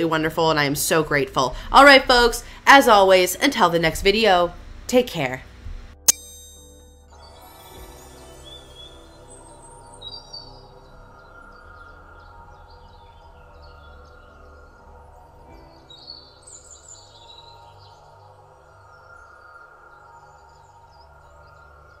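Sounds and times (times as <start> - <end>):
ambient music with held tones: 6.1 - 22.0.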